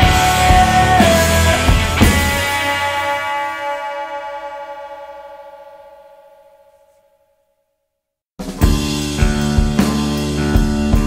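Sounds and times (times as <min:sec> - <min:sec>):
rock chord ringing out: 0:00.0 - 0:07.0, 0:08.4 - 0:11.0.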